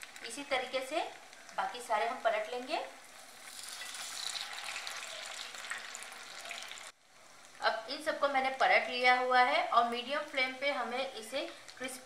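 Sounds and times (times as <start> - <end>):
patties sizzling in hot oil: 0.0 - 12.0.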